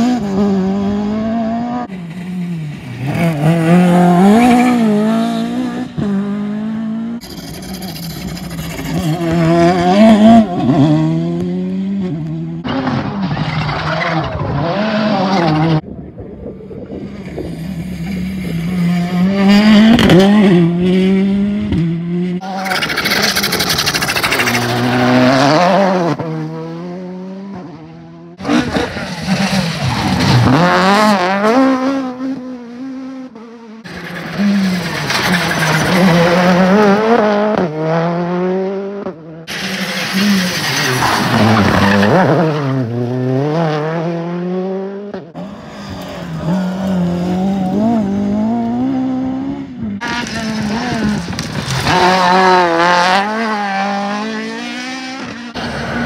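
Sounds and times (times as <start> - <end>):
rally car engines revving: 0.0 - 56.0
tyre squeal: 22.4 - 25.2, 39.5 - 42.7.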